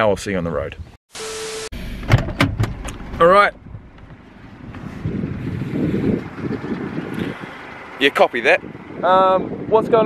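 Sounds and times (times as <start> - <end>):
low rumble: 1.8 - 7.7.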